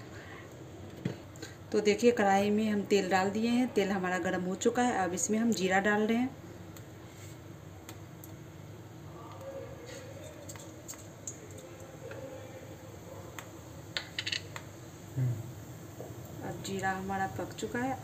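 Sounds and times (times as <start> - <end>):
seeds frying in hot oil: 4.6 - 18.0.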